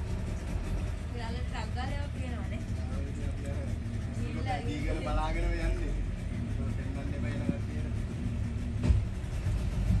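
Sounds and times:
low motor rumble: 0.0s - 10.0s.

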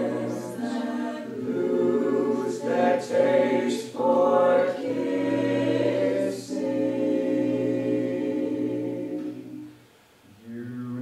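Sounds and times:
choir singing close harmony: 0.0s - 9.8s.

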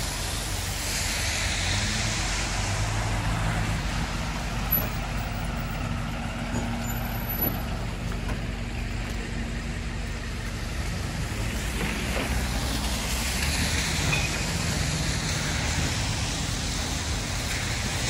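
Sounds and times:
traffic on wet streets: 0.0s - 18.0s
truck engine idling: 3.1s - 18.0s.

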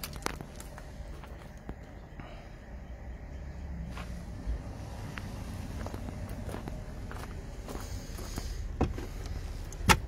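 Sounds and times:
footsteps on gravel: 0.0s - 2.0s, 3.9s - 9.5s.

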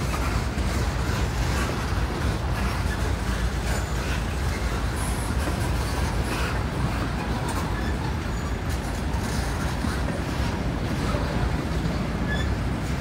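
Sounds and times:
train wheels rumbling on rail: 0.0s - 13.0s.

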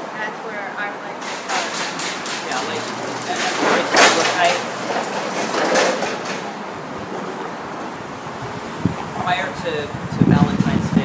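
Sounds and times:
vehicle passing: 1.1s - 10.4s.

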